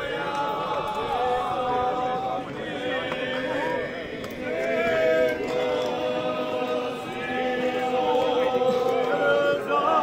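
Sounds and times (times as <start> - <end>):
crowd chatter: 0.0 - 10.0
group singing long notes: 0.0 - 10.0.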